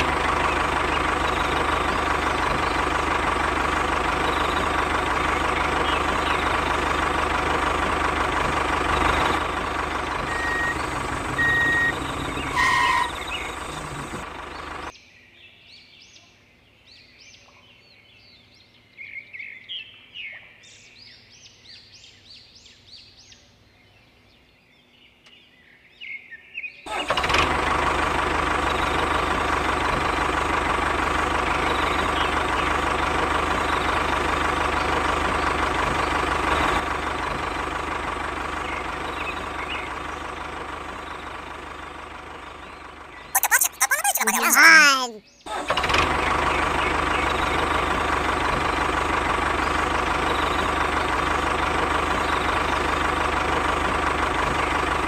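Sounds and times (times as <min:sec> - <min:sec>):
tractor engine running: 0:00.0 - 0:14.9, 0:27.0 - 0:43.2, 0:45.8 - 0:55.0
birds chirping: 0:10.2 - 0:14.2.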